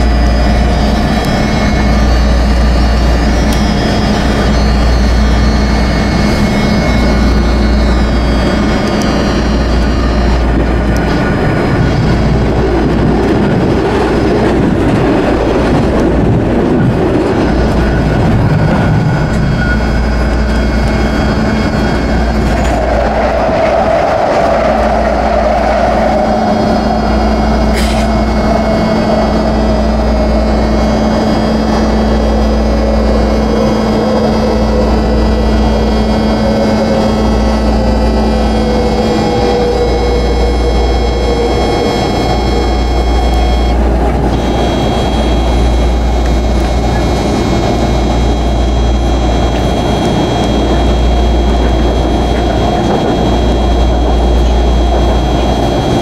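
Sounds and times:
falling whine: 0.0 - 56.0
steady hum: 0.0 - 56.0
train wheels rumbling on track: 0.0 - 56.0.

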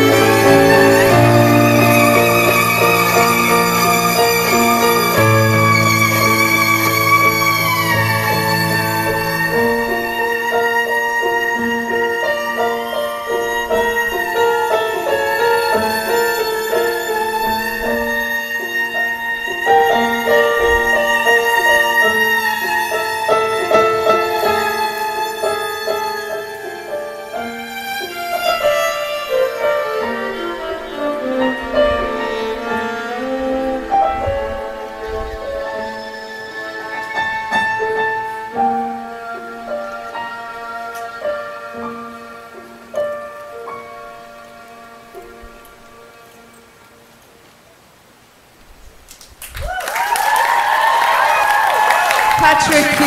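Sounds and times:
violin playing: 0.0 - 47.1
keyboard accompaniment: 0.0 - 47.3.

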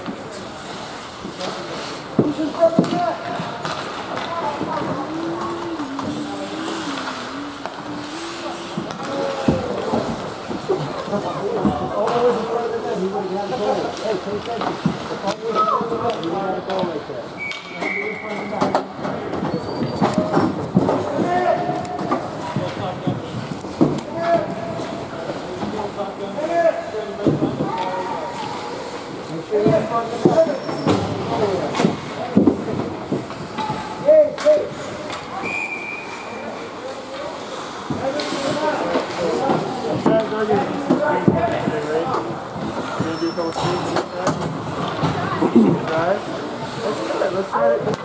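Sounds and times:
sticks and puck clacking on ice: 0.0 - 35.6, 36.7 - 48.0
whistle: 17.4 - 18.5, 35.4 - 36.5.

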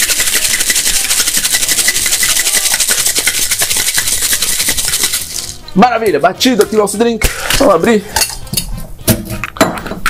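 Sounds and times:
metal cocktail shaker clinks: 0.0 - 5.7.

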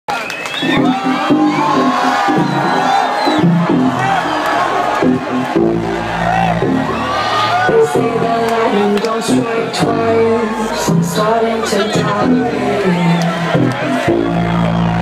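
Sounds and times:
crowd cheering and whooping: 0.1 - 15.0
house music with bassline: 0.6 - 15.0.

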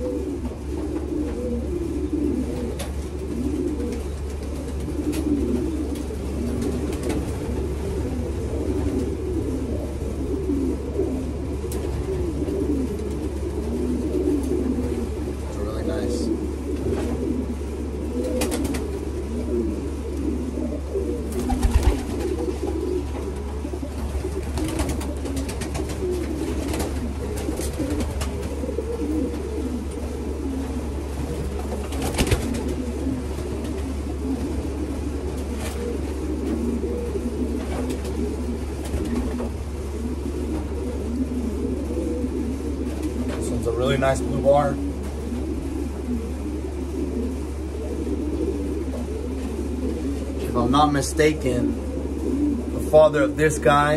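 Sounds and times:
pigeons cooing: 0.0 - 53.9.

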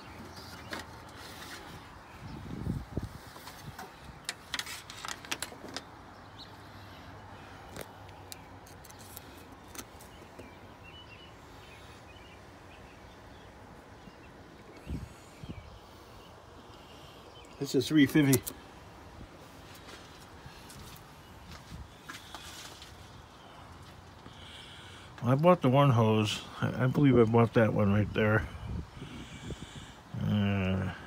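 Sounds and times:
faint steady background noise: 0.0 - 31.0
handling clicks and rustles: 3.2 - 6.2, 7.6 - 10.6
light clicks and rustles: 3.3 - 6.0.

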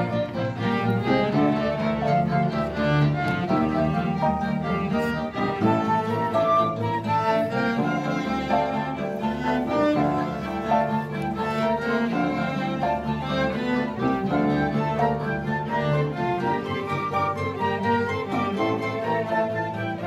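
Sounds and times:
bowed strings: 0.0 - 20.0
classical guitar: 0.0 - 20.0
flutes: 0.0 - 20.0.

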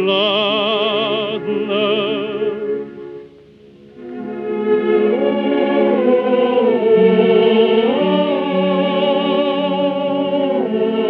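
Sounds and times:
orchestra and chorus sustained chords: 0.0 - 11.0.

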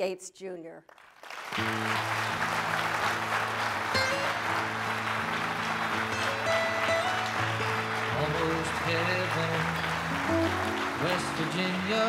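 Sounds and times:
audience applauding: 0.9 - 12.0.

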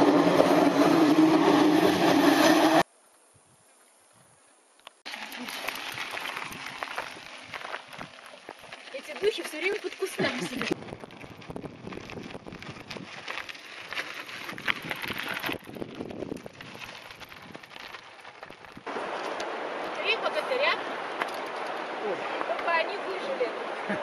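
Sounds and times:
bike rattles and clicks: 4.8 - 20.1, 21.0 - 22.8
bike tyres crunching on gravel: 5.1 - 23.8
river rushing: 18.9 - 23.9.

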